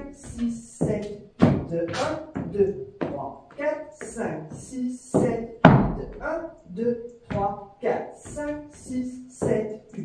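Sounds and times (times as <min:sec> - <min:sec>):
man counting aloud: 0:00.0 - 0:10.0.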